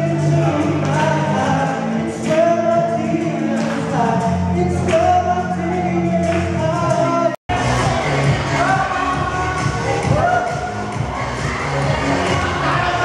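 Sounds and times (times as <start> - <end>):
musical accompaniment: 0.0 - 13.0.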